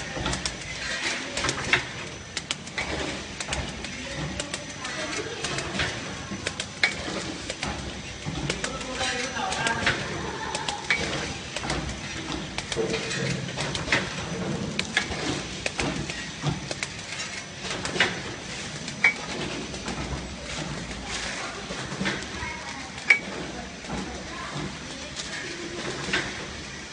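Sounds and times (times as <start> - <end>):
machine clicks and clatter: 0.0 - 26.9
steady mechanical noise: 0.0 - 26.9.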